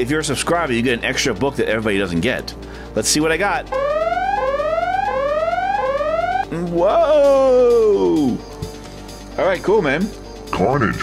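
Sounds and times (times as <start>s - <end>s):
rising electronic alarm tone: 3.7s - 6.5s.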